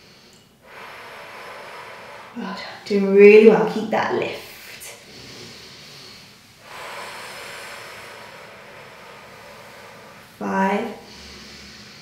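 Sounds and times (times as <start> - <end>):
woman breathing out: 0.0 - 2.9, 5.0 - 10.4, 11.0 - 12.0.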